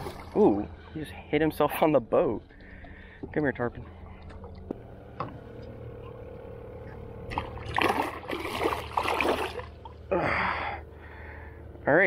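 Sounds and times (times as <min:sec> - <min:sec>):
steady low hum: 0:00.0 - 0:12.0
fish thrashing and splashing: 0:07.3 - 0:10.0.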